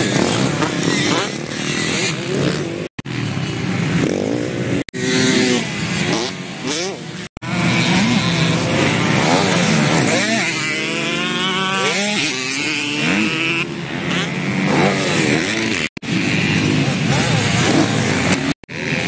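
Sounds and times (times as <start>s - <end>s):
motocross bike engines revving: 0.0s - 19.0s.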